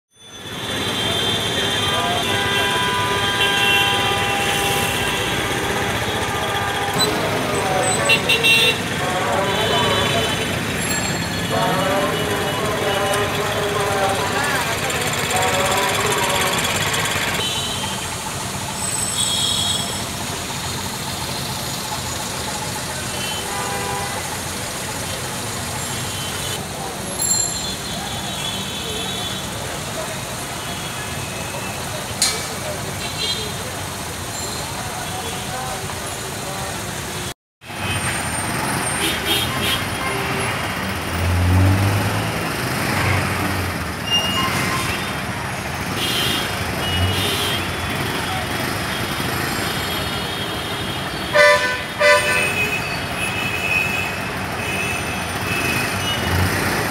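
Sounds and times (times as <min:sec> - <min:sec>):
vehicle engines running in traffic: 0:00.1 - 0:56.9
people's voices: 0:00.6 - 0:18.2, 0:19.6 - 0:37.3
low engine rumbles: 0:04.0 - 0:26.0.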